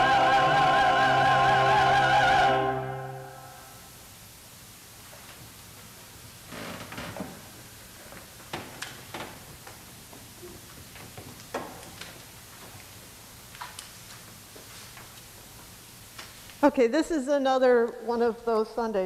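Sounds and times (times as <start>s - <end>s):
choir singing final chord: 0.0s - 3.9s
knocks and rustles of people sitting: 6.5s - 16.5s.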